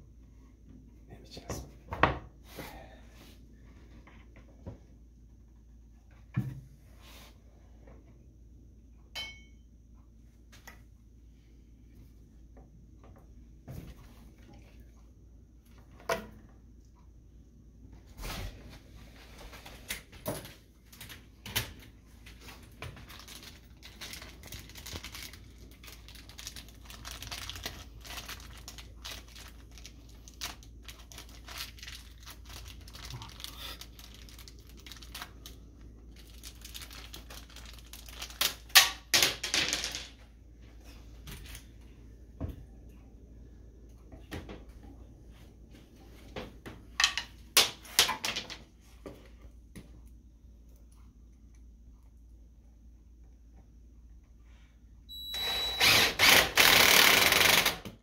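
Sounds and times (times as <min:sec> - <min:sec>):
plastic packaging crinkling: 0:22.3 - 0:39.0.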